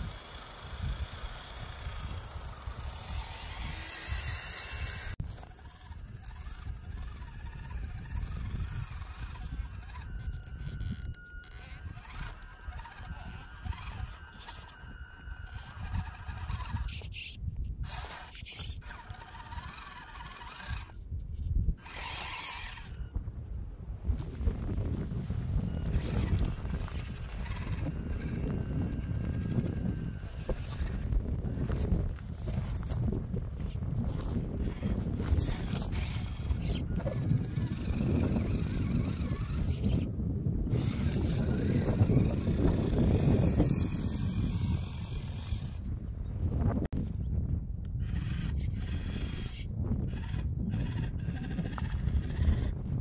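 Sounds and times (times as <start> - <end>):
tyres scraping over rock: 0.0 - 21.0, 21.8 - 23.0, 24.1 - 40.1, 40.7 - 45.8, 48.1 - 52.8
small electric motor whining: 0.0 - 23.2, 24.0 - 53.0
wind rumble on microphone: 0.0 - 53.0.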